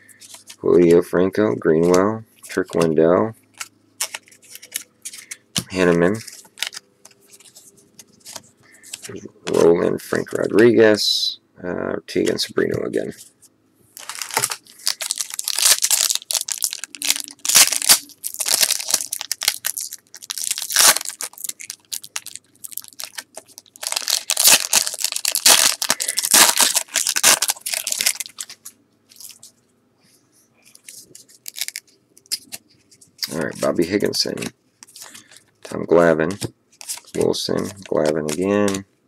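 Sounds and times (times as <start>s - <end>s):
foil wrapper crinkling and tearing: 6.1s - 7.5s, 14.0s - 29.4s, 31.3s - 32.6s, 36.8s - 38.8s.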